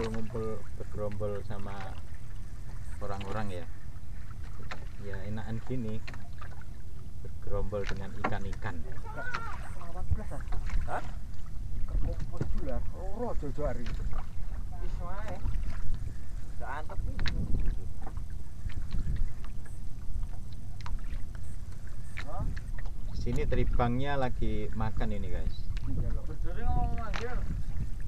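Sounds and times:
boat engine rumble: 0.0s - 28.0s.

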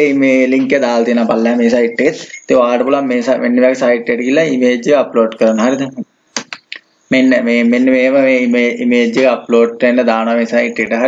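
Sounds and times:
man's voice: 0.0s - 11.0s.

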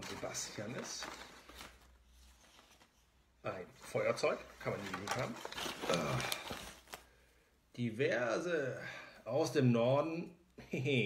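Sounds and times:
rustling of package contents: 0.0s - 7.3s.

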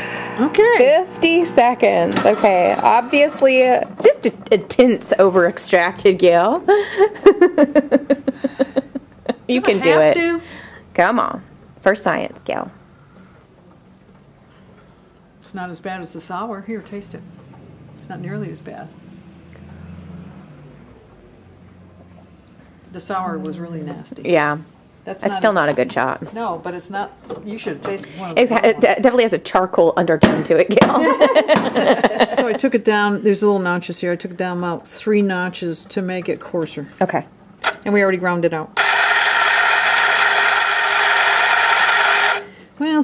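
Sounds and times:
coffee grinder whirring: 0.0s - 4.1s, 38.8s - 42.6s.

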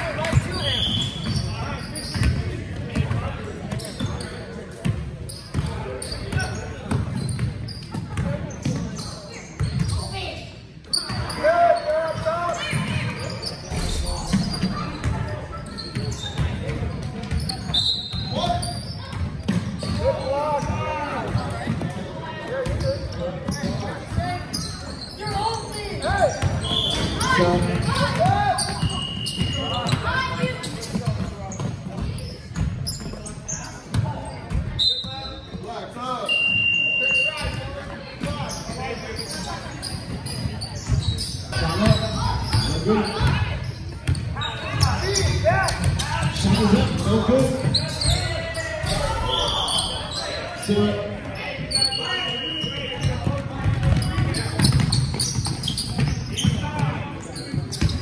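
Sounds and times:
sneakers squeaking: 0.0s - 58.0s
voices echoing in hall: 0.0s - 58.0s
basketballs bouncing on hardwood: 53.1s - 57.0s.

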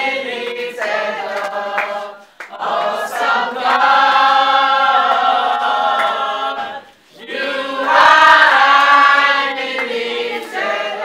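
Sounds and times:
women singing unaccompanied: 0.0s - 11.0s.

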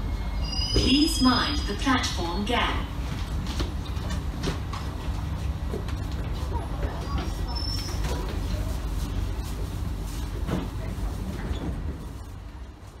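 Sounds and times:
air conditioning humming: 0.0s - 13.0s.

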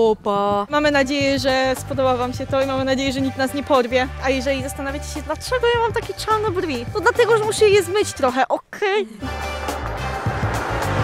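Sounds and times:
background music: 0.0s - 11.0s
car driving past: 9.3s - 11.0s.

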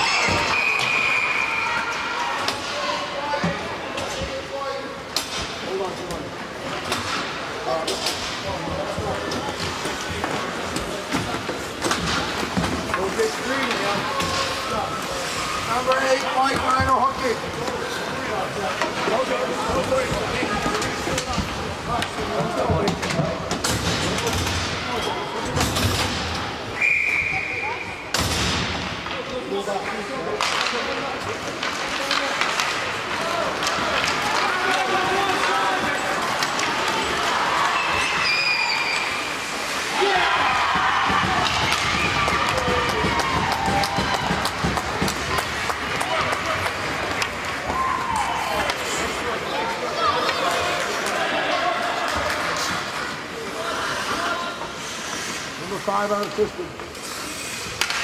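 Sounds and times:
hockey sticks and puck clacking: 0.0s - 26.6s, 28.1s - 58.0s
spectators talking and calling out: 0.0s - 58.0s
referee's whistle: 26.8s - 28.0s.

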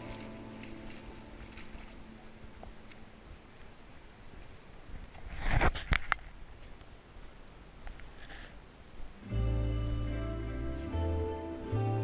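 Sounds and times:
footsteps on rocky cave floor: 0.0s - 3.7s.

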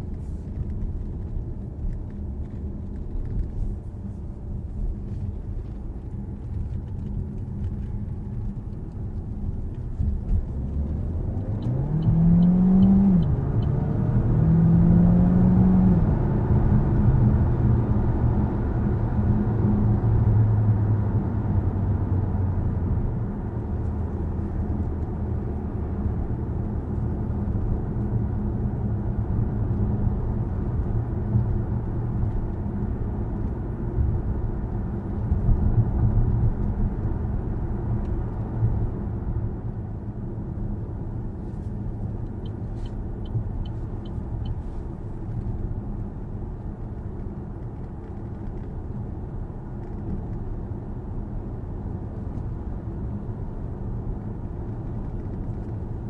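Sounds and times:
road and tyre noise: 0.0s - 56.0s
car engine accelerating: 5.1s - 56.0s.

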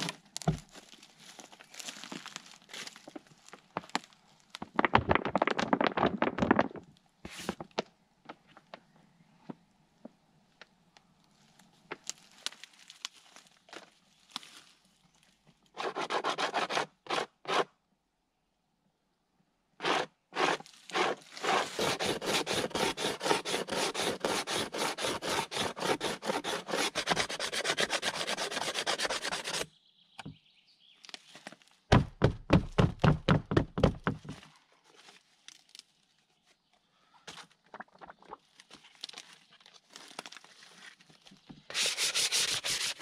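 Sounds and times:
hand scraper scraping hide: 15.8s - 17.7s, 19.8s - 29.7s, 41.7s - 43.0s
heavy bumping scraper strokes: 19.8s - 29.6s.

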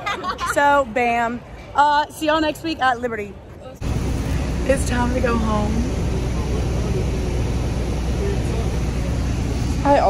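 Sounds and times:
bus engine rumbling: 3.8s - 10.0s.

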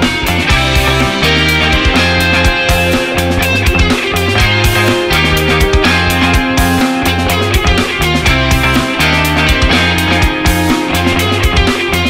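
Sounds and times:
drums beating: 0.0s - 12.0s
rock band music: 0.0s - 12.0s.

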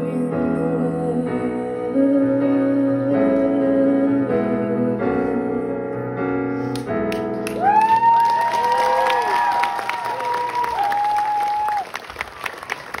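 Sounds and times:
audience applause: 7.1s - 13.0s.

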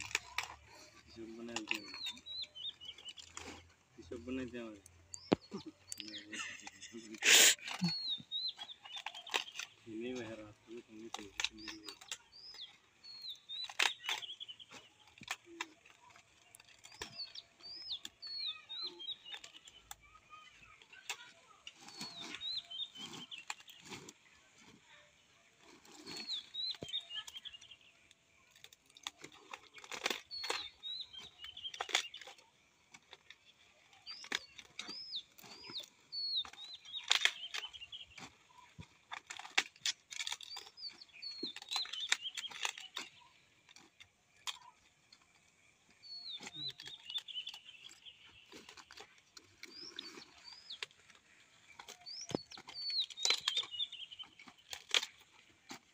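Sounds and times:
cauliflower leaves snapping: 0.0s - 55.9s.

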